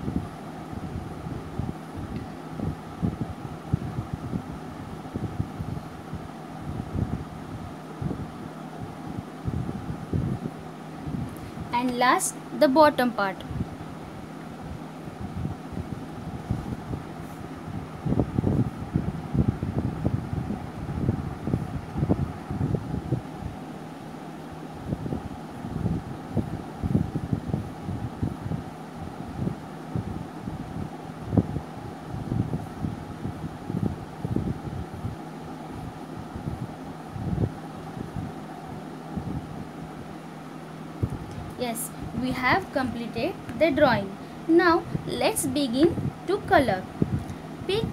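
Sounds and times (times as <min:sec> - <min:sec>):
fan-like hum: 0:00.0 - 0:47.9.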